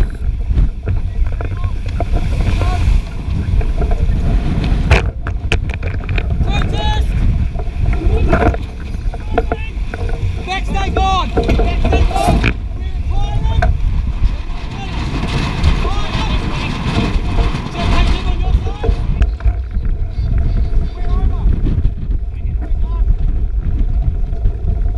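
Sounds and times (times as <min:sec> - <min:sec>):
water rushing along hull: 0:00.0 - 0:24.9
wind buffeting microphone: 0:00.0 - 0:24.9.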